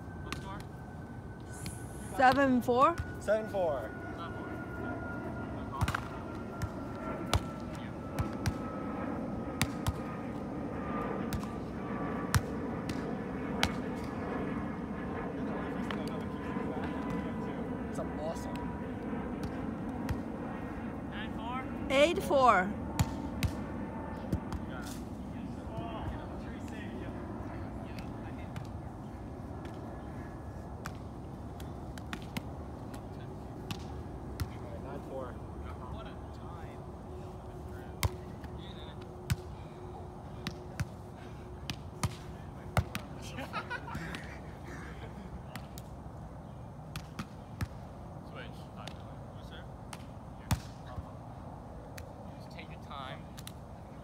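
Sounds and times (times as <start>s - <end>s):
volleyball slapped by hands: 23.0s - 23.6s, 31.6s - 33.0s, 46.9s - 47.8s, 49.9s - 50.8s.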